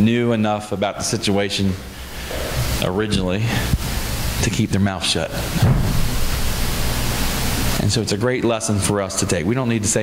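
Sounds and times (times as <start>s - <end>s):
loud steady hiss: 0.0s - 10.0s
man's voice: 2.8s - 3.8s.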